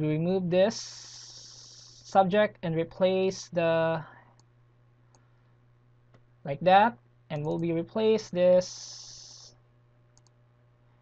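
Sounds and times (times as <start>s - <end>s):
person speaking: 0.0s - 4.3s, 6.4s - 9.6s
steady low hum: 0.0s - 11.0s.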